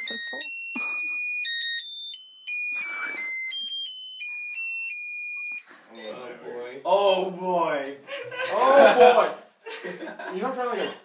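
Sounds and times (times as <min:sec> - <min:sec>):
electronic beeping tune: 0:00.0 - 0:06.4.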